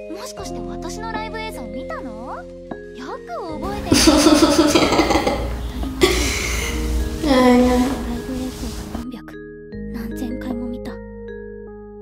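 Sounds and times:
soft background music: 0.0s - 12.0s
girl speaking: 7.2s - 8.8s.

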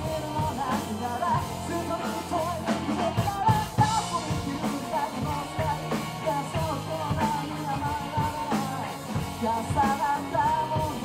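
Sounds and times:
lead vocal singing: 0.0s - 11.0s
rock band playing: 0.0s - 11.0s.

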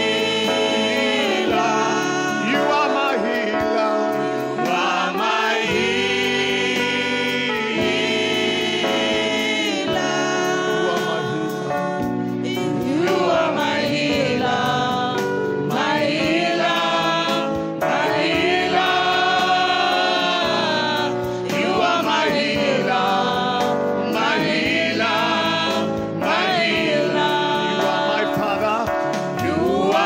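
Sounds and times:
woman singing gospel: 0.0s - 3.3s, 4.3s - 28.6s, 29.4s - 30.0s
instrumental accompaniment: 0.0s - 30.0s
backing singers: 29.4s - 30.0s.

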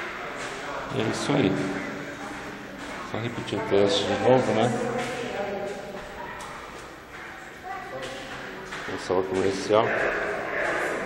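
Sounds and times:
faint voices: 0.0s - 11.0s
low room noise: 0.0s - 11.0s.

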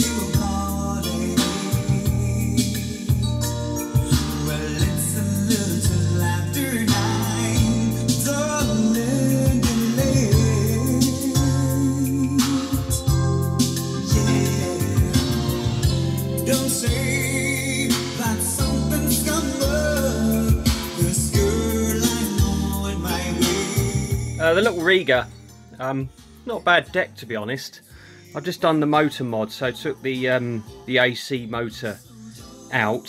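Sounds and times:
song with singer and bass: 0.0s - 33.0s.

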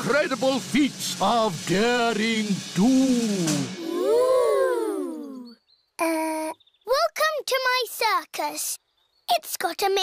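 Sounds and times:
cartoon children exclaiming in wonder: 3.8s - 7.0s.

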